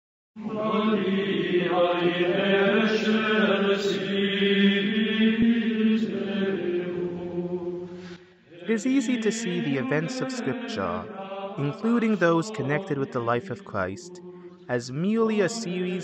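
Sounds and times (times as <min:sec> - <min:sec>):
voices chanting with drone: 0:00.4 - 0:07.8, 0:08.5 - 0:16.0.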